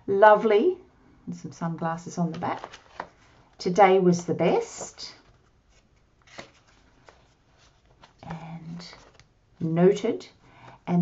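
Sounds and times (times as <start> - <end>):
paper cards swishing: 4.8 - 9.2.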